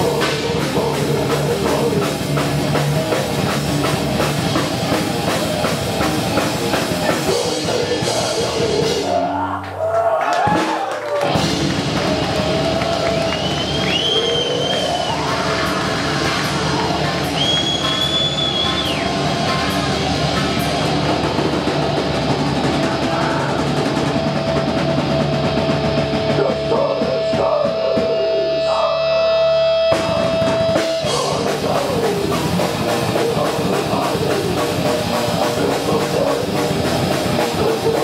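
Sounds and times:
fast drumming: 0:00.0 - 0:09.2, 0:10.4 - 0:28.3, 0:29.8 - 0:38.0
distorted guitars: 0:00.0 - 0:09.8, 0:11.2 - 0:38.0.

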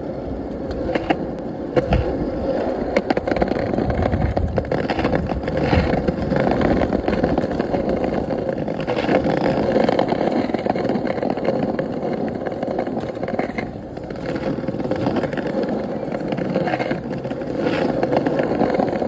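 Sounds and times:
scooter wheels rolling on paving: 0:00.0 - 0:19.0.

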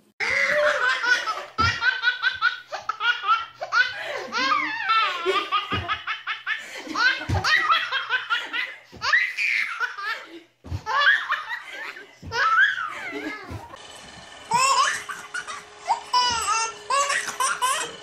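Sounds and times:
toddler laughing: 0:00.2 - 0:13.8, 0:14.5 - 0:18.0.

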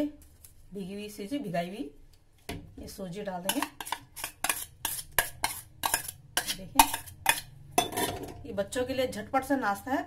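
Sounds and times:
spoon scraping a bowl: 0:03.4 - 0:08.2.

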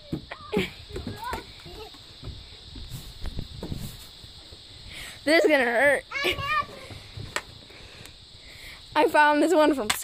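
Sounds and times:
children calling: 0:06.0 - 0:07.2.

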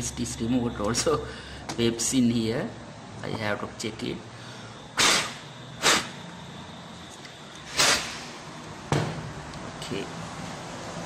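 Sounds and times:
hard puffs of breath: 0:01.3 - 0:01.7, 0:04.3 - 0:06.2.

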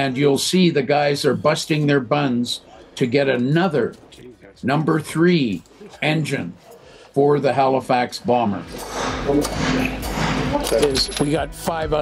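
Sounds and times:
muffled voices: 0:00.0 - 0:12.0.

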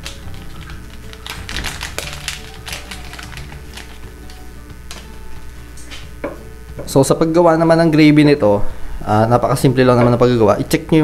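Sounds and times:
background music: 0:00.0 - 0:08.5.

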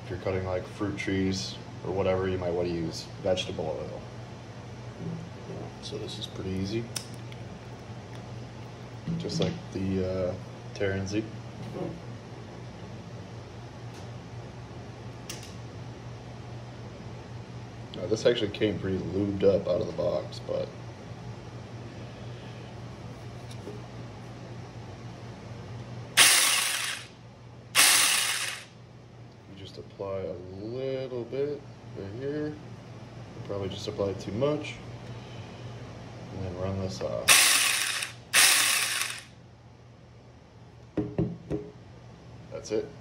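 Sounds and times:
chainsaw bursts: 0:26.2 - 0:27.1, 0:27.8 - 0:28.7, 0:37.3 - 0:39.3
chainsaw knocking on wooden table: 0:41.0 - 0:41.7.

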